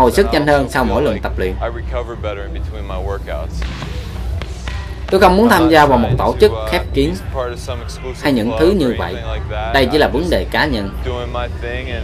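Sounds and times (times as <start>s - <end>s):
man talking: 0.0s - 3.8s, 5.6s - 12.0s
background music: 0.0s - 12.0s.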